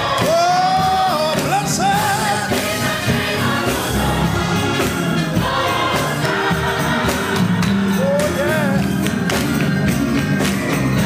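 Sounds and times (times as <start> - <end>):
band playing: 0.0 - 11.0
choir and congregation singing: 0.0 - 11.0
hand claps: 7.3 - 11.0.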